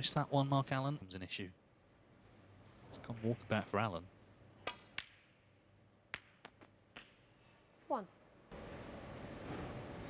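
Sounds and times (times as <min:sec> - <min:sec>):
snooker balls clicking: 0:04.6 - 0:05.4, 0:06.1 - 0:07.3.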